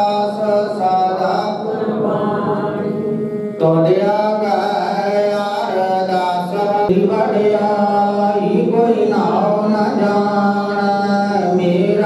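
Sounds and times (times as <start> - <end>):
congregation chanting in unison: 0.0 - 12.0.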